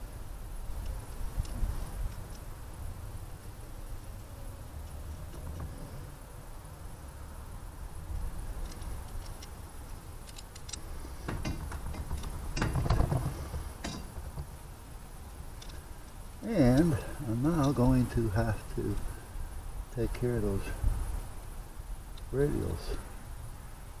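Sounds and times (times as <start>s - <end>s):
metal hardware clinking: 10.2s - 14.4s.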